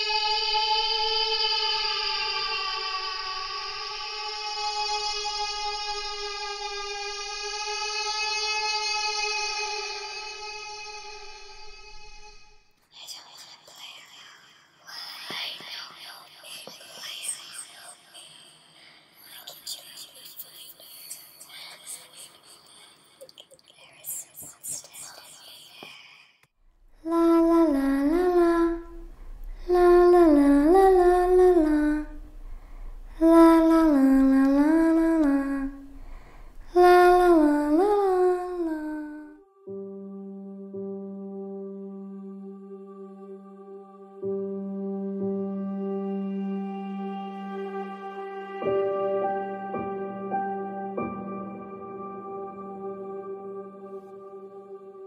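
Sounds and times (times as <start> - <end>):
person whispering: 12.9 - 26.5
person humming a slow melody: 27.0 - 49.7.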